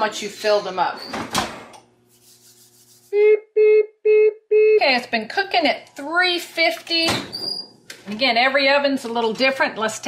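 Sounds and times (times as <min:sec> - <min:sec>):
rubbing and scraping: 0:02.1 - 0:03.2.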